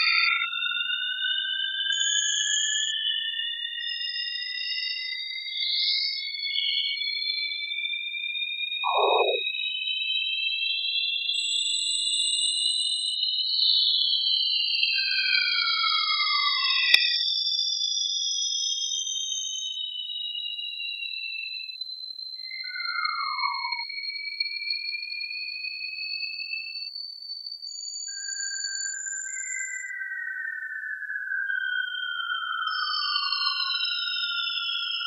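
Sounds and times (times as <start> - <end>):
faint high whistle: 0.0 - 0.6, 8.9 - 9.4, 20.4 - 35.0
gliding sine tones: 8.9 - 9.4, 22.6 - 23.8
rising electronic tones: 8.9 - 9.4.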